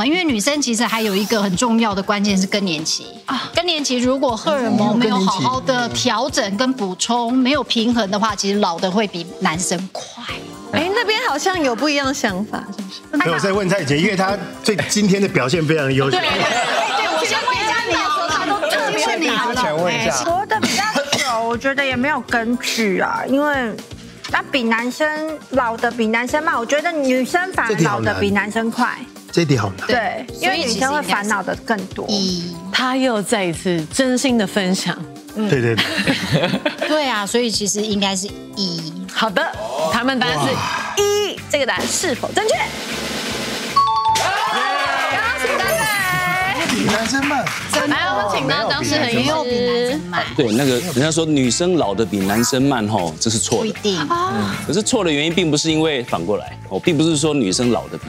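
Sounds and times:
light background music: 0.0s - 58.0s
voices talking over one another: 15.7s - 22.3s, 37.9s - 41.8s, 44.6s - 51.0s
two-tone descending chime: 43.8s - 44.5s
people cheering: 43.8s - 48.3s.

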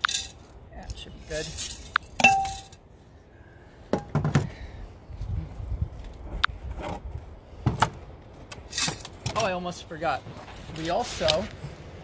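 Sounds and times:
wind rumbling on microphone: 4.4s - 9.3s.

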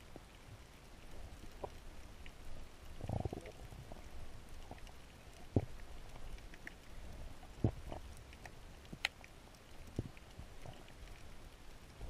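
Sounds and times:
faint ticks: 0.0s - 12.0s
muffled underwater rumble: 0.0s - 12.0s
low gurgling thumps: 7.5s - 8.1s.

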